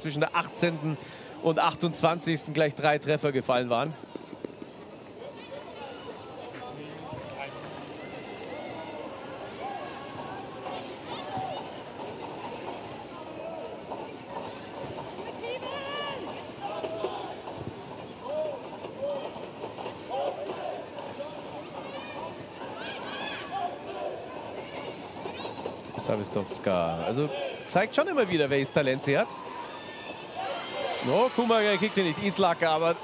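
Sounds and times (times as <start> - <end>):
crowd murmur: 3.8 - 33.0
players shouting: 13.2 - 33.0.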